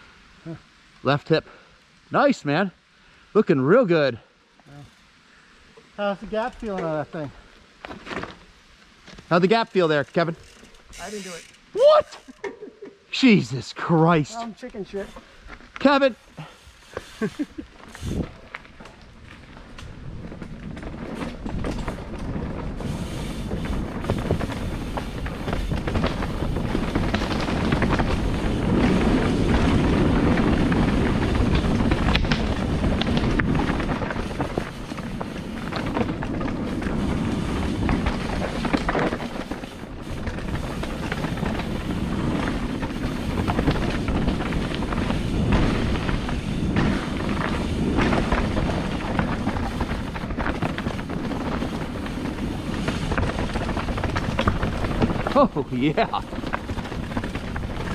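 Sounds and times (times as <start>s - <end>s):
tyres rolling on dirt: 6.0s - 57.9s
wind rushing over microphone: 19.9s - 57.9s
bike knocks and rattles: 20.3s - 57.9s.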